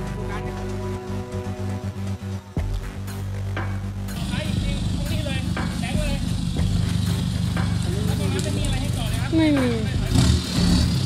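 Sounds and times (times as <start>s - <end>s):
truck engine running at low revs: 3.0s - 11.0s.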